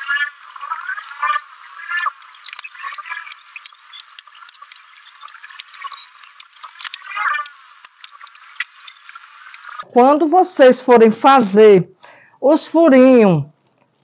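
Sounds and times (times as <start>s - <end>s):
plastic pots clicking and crackling: 0.0s - 9.8s.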